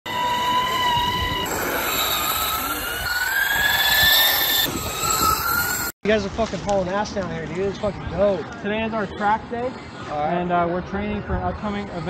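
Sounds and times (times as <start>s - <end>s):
electric motor whine: 0.1s - 5.9s
wheels rolling: 0.1s - 5.9s
wind noise: 0.1s - 6.7s.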